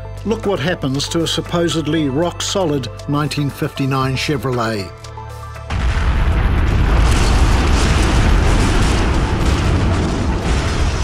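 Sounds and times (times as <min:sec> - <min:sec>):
deep rumbling car crash: 0:05.7 - 0:11.0.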